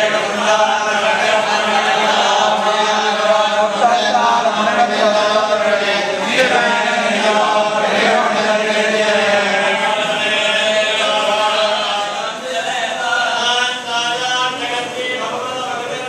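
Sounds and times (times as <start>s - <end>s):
men chanting a hymn: 0.0s - 16.0s.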